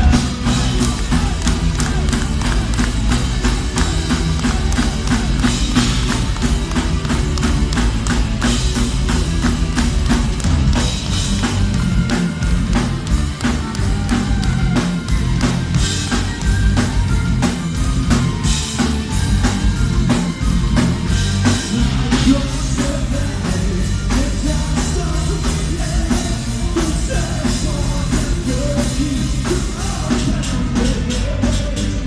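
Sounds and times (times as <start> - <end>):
distorted electric guitars: 0.0 - 32.0
live metal band playing: 0.0 - 32.0
rapid drumming with kick drum: 0.0 - 32.0.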